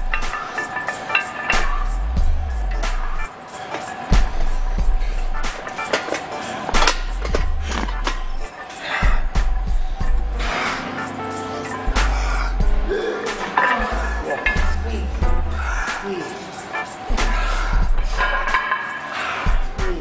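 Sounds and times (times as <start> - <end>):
music with heavy bass: 1.5 - 3.3, 4.1 - 5.7, 6.8 - 16.1, 17.1 - 18.6, 19.5 - 20.0.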